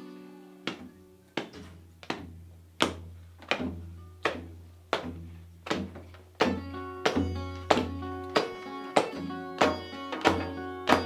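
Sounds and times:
acoustic guitar strummed chords: 0.0 - 11.0.

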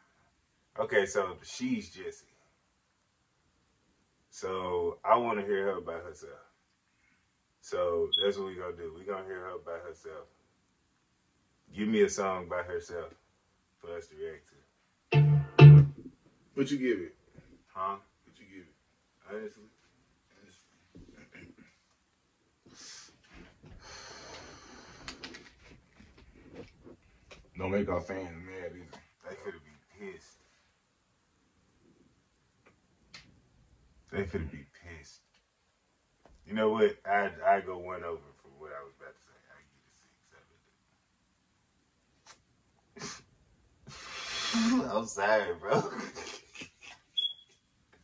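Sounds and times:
man exhaling smoke: 43.8 - 44.7
man laughing breathily: 45.8 - 47.1
short high squeak: 47.2 - 47.6.

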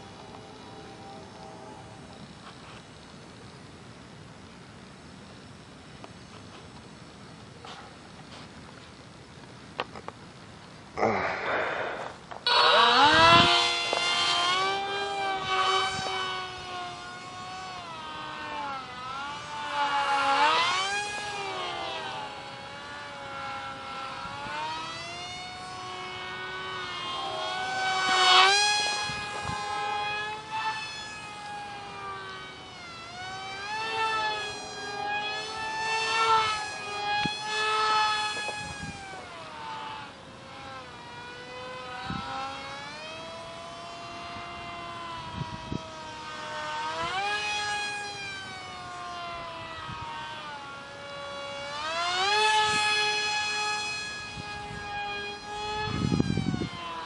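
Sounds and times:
model plane motor whine: 0.0 - 57.0.

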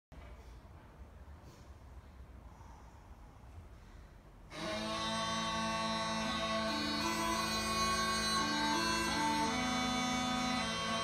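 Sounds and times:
bagpipes playing: 4.5 - 11.0.

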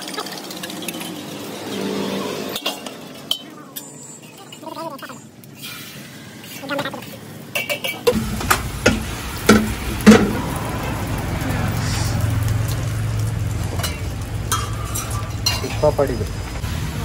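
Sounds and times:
eggs sizzling on a griddle: 0.0 - 17.0
metal spatula scraping and clanking: 0.5 - 4.7.

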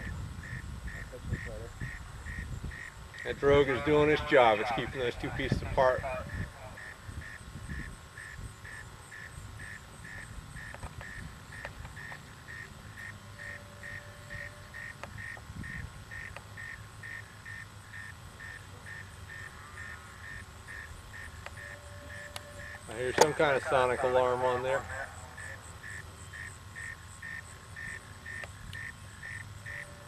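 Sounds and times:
electronic alarm beeping: 9.6 - 15.4, 20.7 - 26.5.

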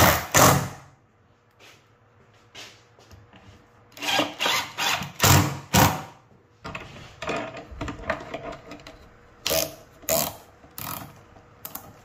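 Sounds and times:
cordless drill running: 4.0 - 5.5.

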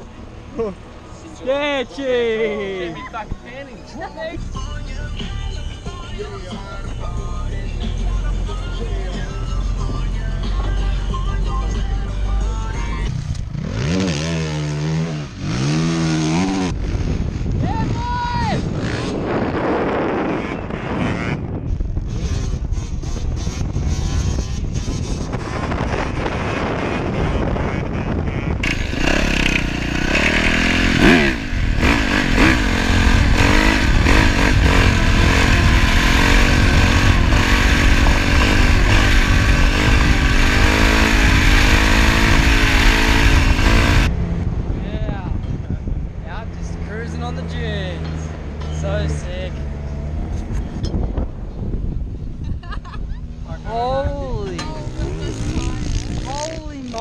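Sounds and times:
dirt bike engine revving: 13.1 - 17.6, 18.6 - 44.1, 53.6 - 57.0
rushing wind noise: 15.1 - 57.0.

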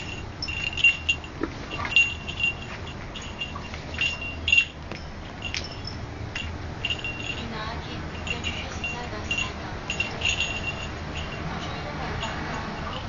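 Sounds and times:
small bell jingling: 0.0 - 13.0.

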